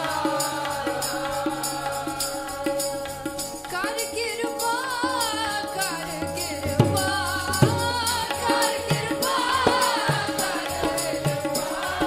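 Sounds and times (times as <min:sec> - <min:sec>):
harmoniums playing chords: 0:00.0 - 0:12.0
people singing: 0:00.0 - 0:12.0
tabla beat: 0:00.0 - 0:12.0.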